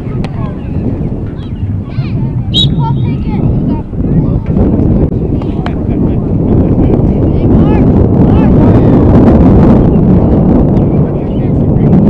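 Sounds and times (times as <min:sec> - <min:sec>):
faint voices: 0:00.0 - 0:09.1, 0:09.8 - 0:12.0
wind buffeting microphone: 0:00.0 - 0:12.0.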